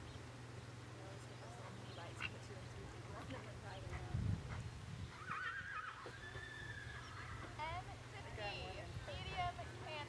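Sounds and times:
horse whinnying: 5.1s - 7.4s.

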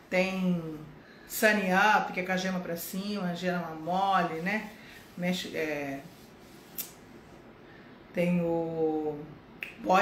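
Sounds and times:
soft hiss: 0.0s - 10.0s.

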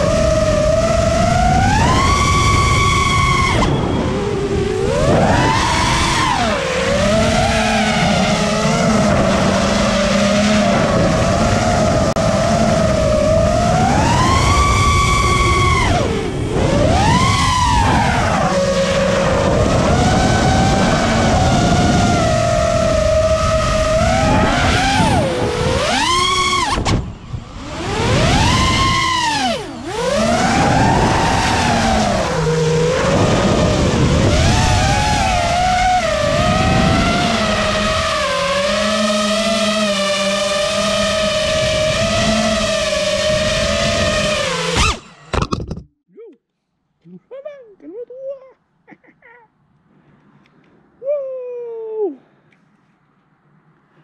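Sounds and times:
drone propellers whining: 0.0s - 45.9s.

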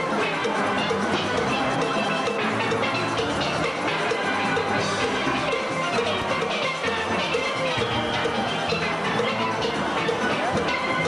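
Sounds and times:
drums and percussion: 0.0s - 11.0s
steel pans playing: 0.0s - 11.0s.

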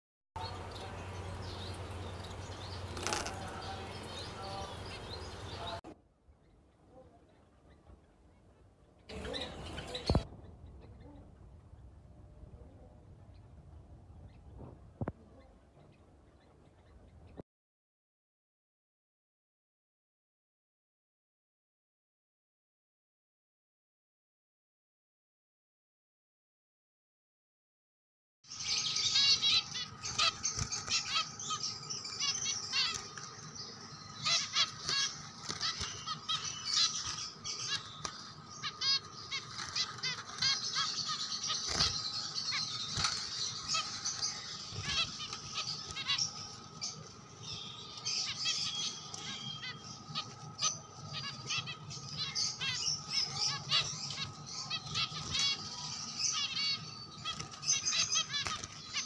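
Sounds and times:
sparrows chirping: 0.4s - 17.4s, 28.4s - 59.0s.

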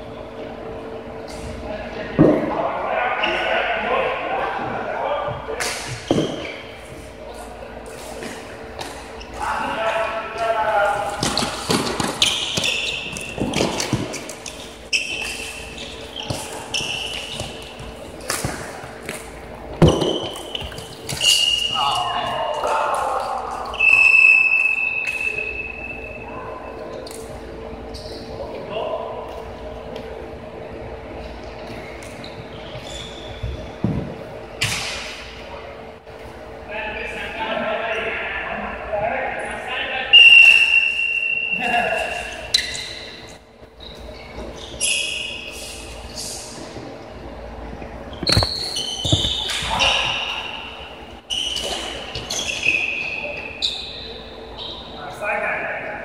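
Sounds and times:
floorball sticks and ball clacking: 48.2s - 50.2s
high squeaking tones: 48.2s - 50.6s.

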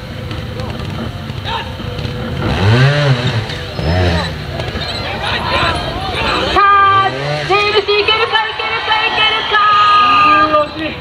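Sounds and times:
motorcycle engine revving: 0.0s - 11.0s
people shouting: 1.4s - 1.8s, 5.1s - 10.6s.

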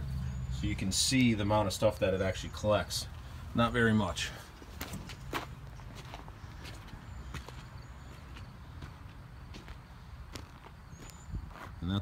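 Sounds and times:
footsteps on packed dirt: 4.0s - 11.9s.

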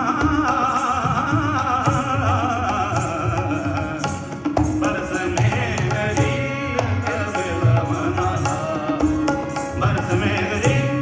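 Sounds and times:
harmoniums: 0.0s - 11.0s
man singing ornamented melody: 0.0s - 11.0s
tabla: 0.0s - 11.0s.

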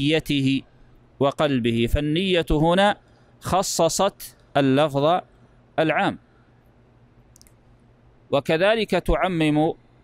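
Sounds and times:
man speaking: 0.0s - 6.2s, 8.3s - 9.8s
faint click: 7.3s - 7.6s.

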